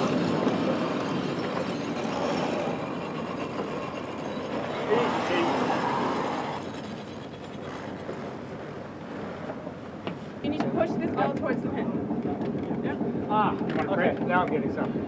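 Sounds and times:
wind and sea rushing: 0.0s - 15.0s.

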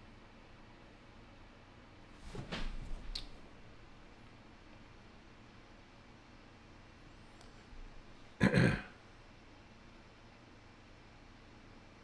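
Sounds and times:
man clearing throat: 8.4s - 9.0s.

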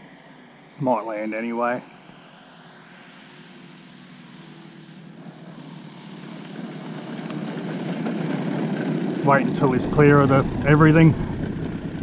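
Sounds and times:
model plane engine running: 0.0s - 12.0s.

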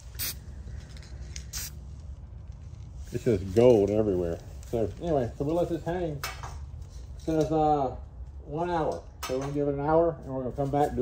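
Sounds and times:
spray paint can hissing: 0.0s - 0.4s, 1.3s - 1.8s.

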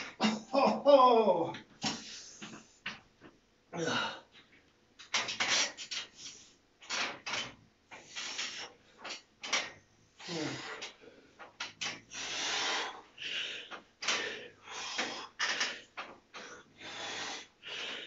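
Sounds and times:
man groaning: 0.2s - 1.6s, 3.8s - 4.3s, 10.2s - 10.7s
man breathing hard: 10.2s - 11.5s, 12.1s - 18.0s.

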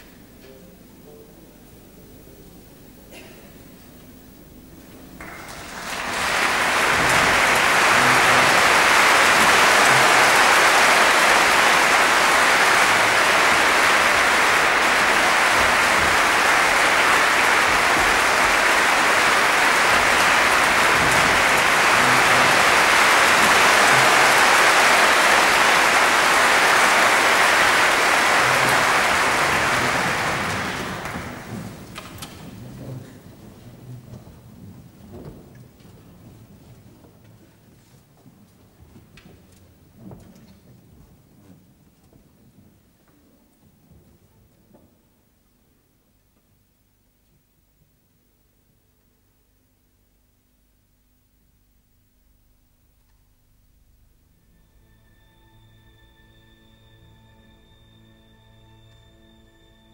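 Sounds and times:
audience applauding: 5.2s - 35.4s.

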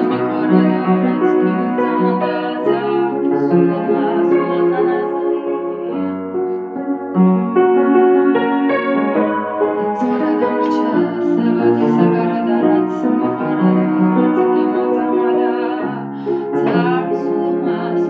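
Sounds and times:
upright piano playing chords: 0.0s - 18.0s.

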